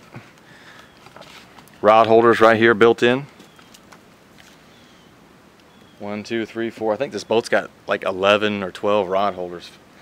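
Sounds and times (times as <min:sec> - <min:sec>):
faint steady hiss: 0:00.0 - 0:10.0
bird chirps: 0:03.4 - 0:03.9, 0:04.6 - 0:06.2.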